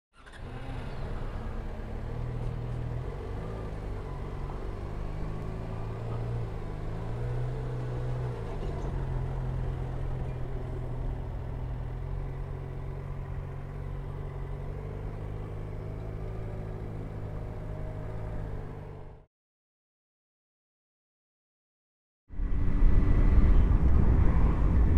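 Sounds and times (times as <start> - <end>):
motorcycle engine at low revs: 0.2 - 19.3
road and wind noise: 0.2 - 19.3, 22.3 - 24.9.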